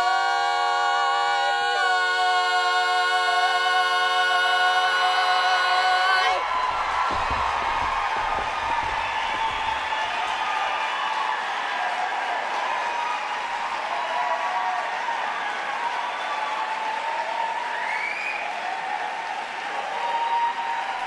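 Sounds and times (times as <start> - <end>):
audience applauding: 6.1 - 21.0.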